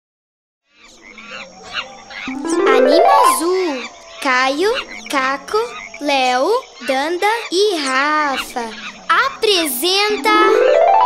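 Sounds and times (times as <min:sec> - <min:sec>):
cartoon animal calls: 0:00.8 - 0:10.7.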